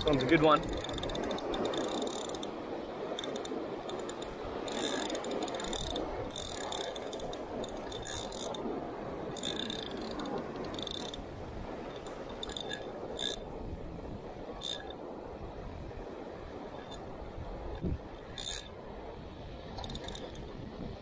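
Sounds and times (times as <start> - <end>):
surf washing: 0.0 - 21.0
fishing reel ratchet clicks: 0.1 - 2.5, 3.2 - 8.6, 9.4 - 11.2, 12.0 - 13.4, 14.6 - 14.9, 18.3 - 18.7, 19.8 - 20.4.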